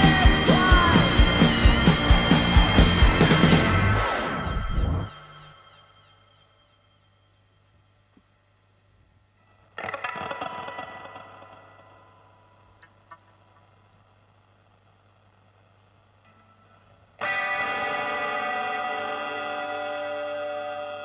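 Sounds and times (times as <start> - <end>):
electric guitar chord strum: 0.0 - 5.1, 9.8 - 12.2, 16.3 - 21.0
rock band final hit: 0.0 - 5.4
low amplifier hum: 0.0 - 5.8, 7.3 - 21.0.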